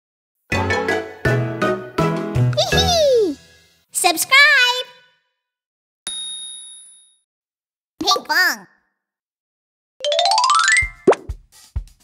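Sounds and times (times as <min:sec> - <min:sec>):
bright ding: 0:06.1 - 0:07.2.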